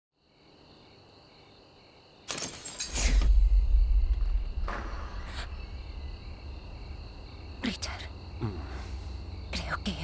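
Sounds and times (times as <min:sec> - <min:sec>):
crickets chirring: 0:00.2 - 0:10.0
sudden rushing noise: 0:03.1 - 0:07.6
deep low rumble: 0:03.2 - 0:08.2.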